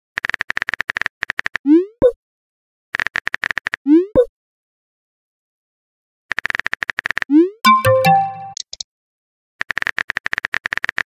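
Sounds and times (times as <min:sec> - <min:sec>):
keyboard typing clicks: 0:06.8 - 0:08.8
message sent pop: 0:07.7 - 0:08.6.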